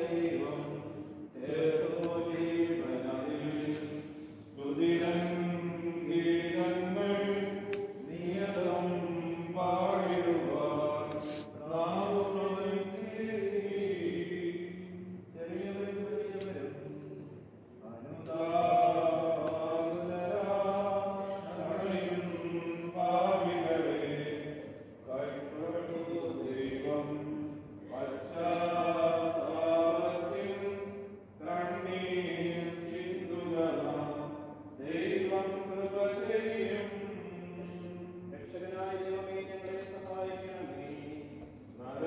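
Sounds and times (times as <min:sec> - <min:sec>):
voices chanting a hymn: 0:00.0 - 0:42.0.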